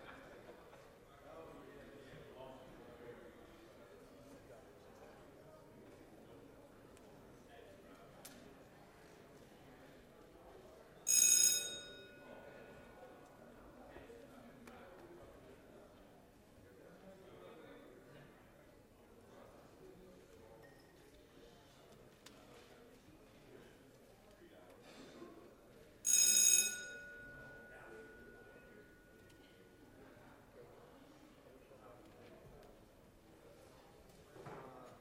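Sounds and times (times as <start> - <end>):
low room murmur: 0.0 - 35.0
bell-like ring: 11.1 - 12.7, 26.1 - 29.8.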